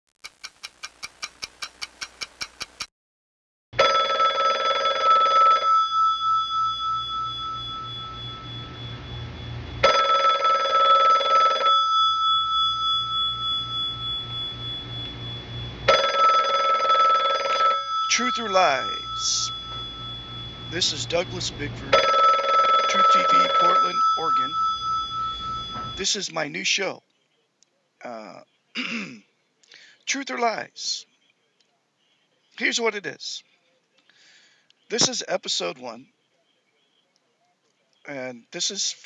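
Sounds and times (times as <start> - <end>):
rapid ticks: 0.2 - 2.9
telephone ringing: 3.8 - 26.3.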